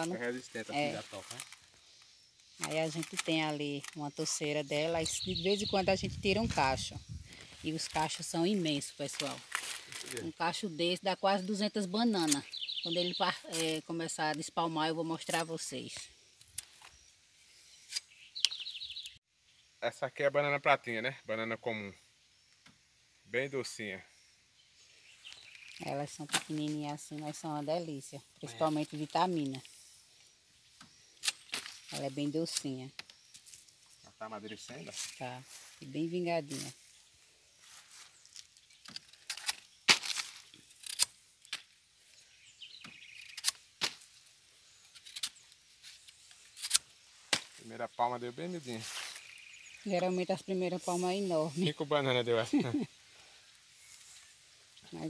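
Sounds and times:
small bird chirping: 0.0 - 55.0
snaps and knocks cutting bananas: 46.6 - 47.6.

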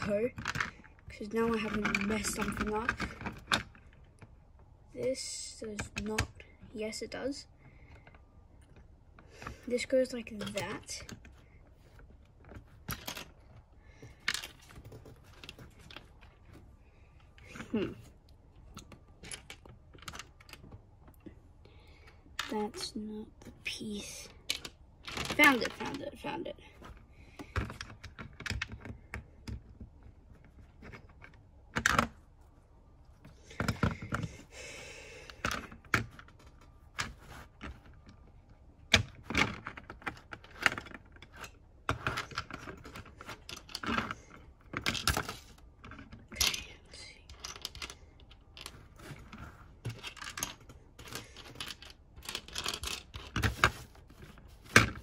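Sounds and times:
plastic bricks clicking: 12.5 - 16.3, 18.7 - 21.2, 24.4 - 26.0, 38.9 - 55.0.

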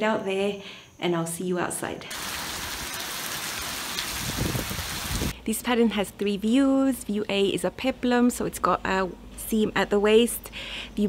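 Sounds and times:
heavy rain pouring: 2.1 - 5.3.

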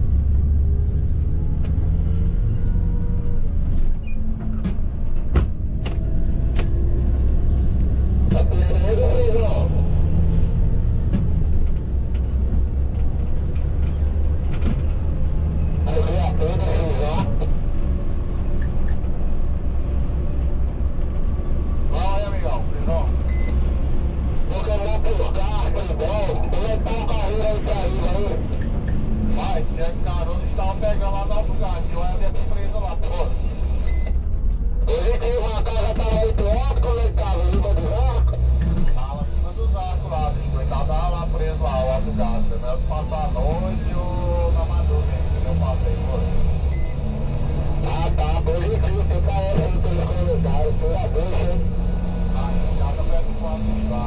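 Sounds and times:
coach engine and road rumble: 0.0 - 54.0
voices speaking: 8.3 - 9.8, 15.8 - 17.5, 24.5 - 28.6.

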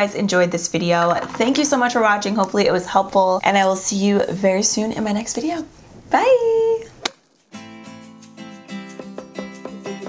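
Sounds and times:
plucked-string background music: 7.5 - 10.0.

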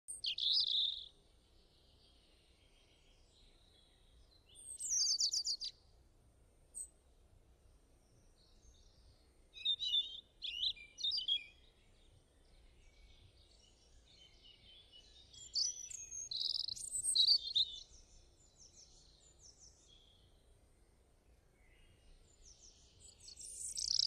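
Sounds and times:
birds chirping: 0.1 - 5.7, 9.6 - 20.4, 21.6 - 24.0.

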